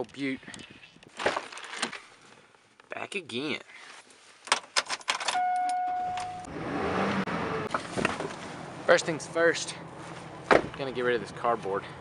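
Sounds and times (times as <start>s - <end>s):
warning chime: 5.4s - 6.5s.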